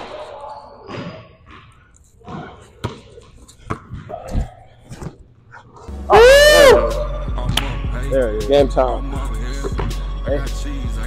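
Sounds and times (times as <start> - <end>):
basketball bouncing on hardwood floor: 0.9 - 4.2.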